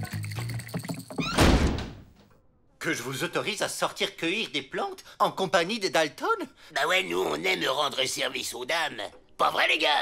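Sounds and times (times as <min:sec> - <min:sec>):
cartoon background music: 0:00.0 - 0:01.4.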